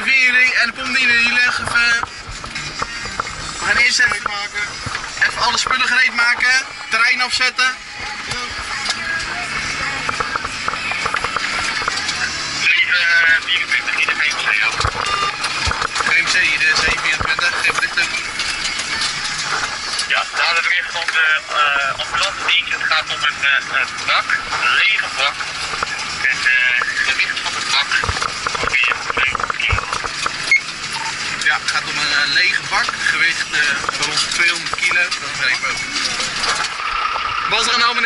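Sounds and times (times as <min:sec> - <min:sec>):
road and engine noise: 0:00.0 - 0:38.0
knocks and rattles: 0:00.6 - 0:07.0, 0:08.0 - 0:12.6, 0:13.2 - 0:38.0.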